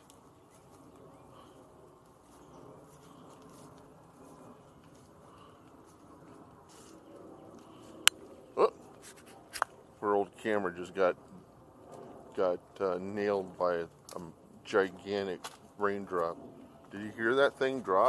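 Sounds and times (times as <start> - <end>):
faint outdoor background: 0.0 - 18.0.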